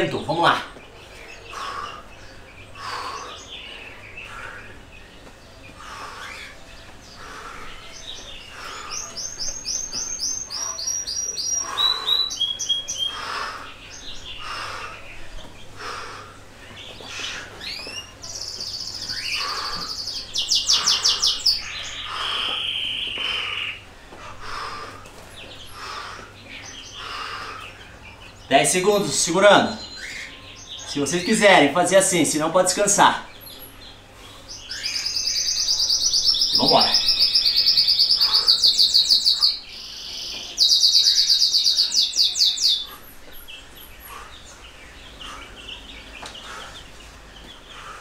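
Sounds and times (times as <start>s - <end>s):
songbirds chirping and singing: 0.0s - 48.0s.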